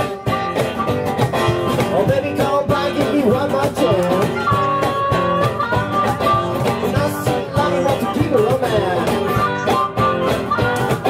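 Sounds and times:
acoustic guitar: 0.0s - 11.0s
electric guitar lead with bends: 0.0s - 11.0s
steady percussion beat: 0.0s - 11.0s
harmonica holding long notes: 4.2s - 11.0s.

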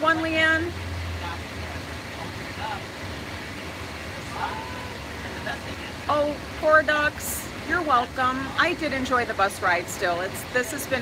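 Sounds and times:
bus engine rumble and road noise: 0.0s - 11.0s
faint passenger voices: 0.0s - 11.0s.

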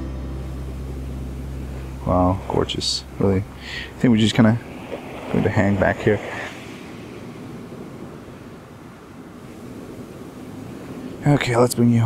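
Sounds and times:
faint low hum: 0.0s - 12.0s
surf: 0.0s - 12.0s
wind: 0.0s - 12.0s.

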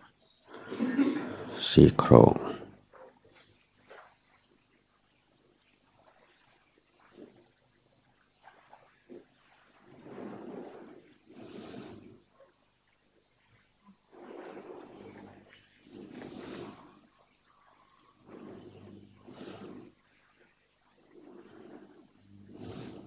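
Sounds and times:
heavy breathing close to microphone: 10.2s - 12.2s, 14.1s - 17.1s, 18.2s - 20.0s, 21.2s - 23.0s.

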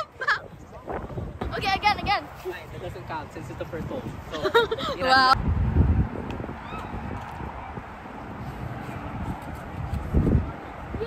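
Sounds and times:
wind buffeting microphone: 0.4s - 11.0s.

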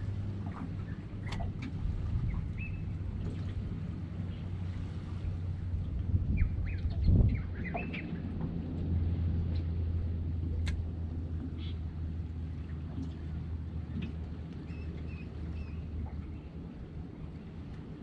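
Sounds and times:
steady low hum: 0.0s - 18.0s
birds chirping: 14.6s - 16.5s.

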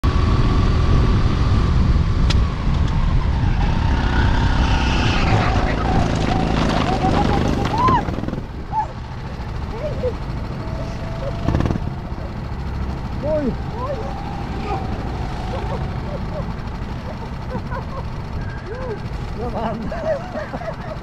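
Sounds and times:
go-kart engine rumbling: 0.0s - 21.0s.

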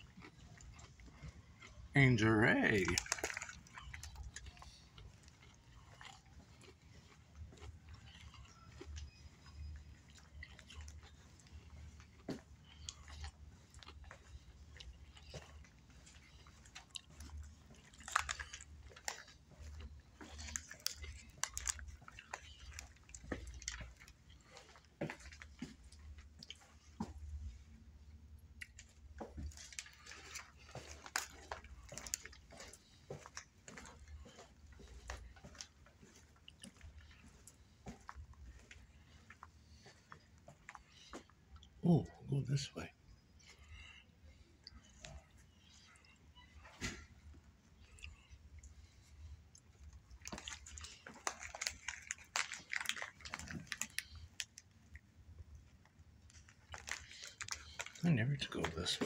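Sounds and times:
person chewing crunchy snack: 0.0s - 27.5s, 28.6s - 41.8s, 43.4s - 59.0s.

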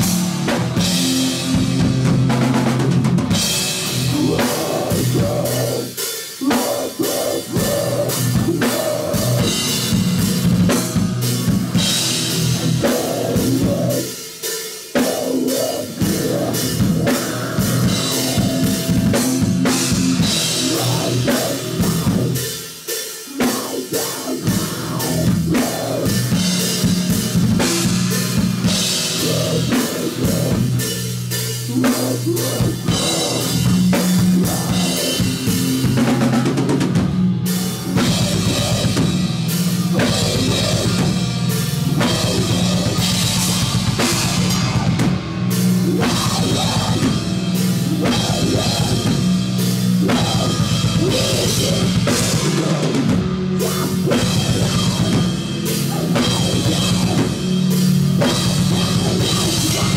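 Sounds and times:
distorted guitars and bass: 0.0s - 59.9s
fast dense drumming: 0.0s - 59.9s.

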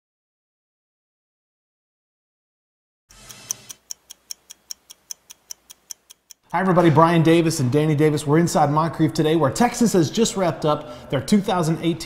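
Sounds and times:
stopwatch ticking: 3.1s - 6.6s.

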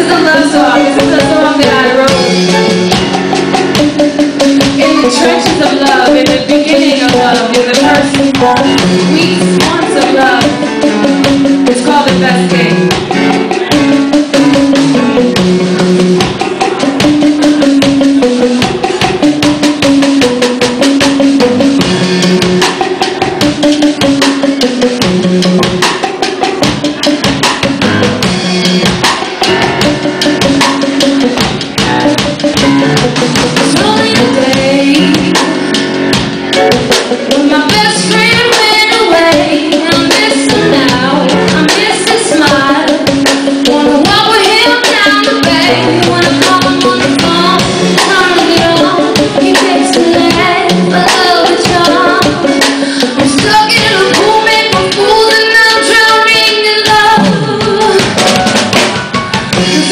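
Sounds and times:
woman singing into a microphone: 0.0s - 3.0s, 4.5s - 13.3s, 33.6s - 35.9s, 37.1s - 58.4s
drum kit steady beat: 0.0s - 59.9s
electric guitar: 0.0s - 59.9s.

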